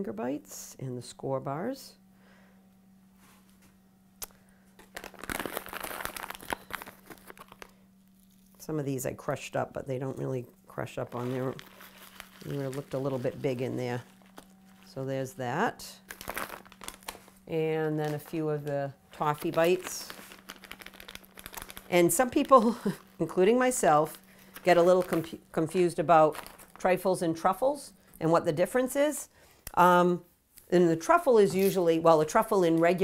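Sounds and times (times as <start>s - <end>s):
small clicks of candy bits: 4.2s - 8.6s, 20.1s - 23.1s, 26.3s - 26.8s
candy packaging crinkling: 4.8s - 8.7s, 11.0s - 27.9s.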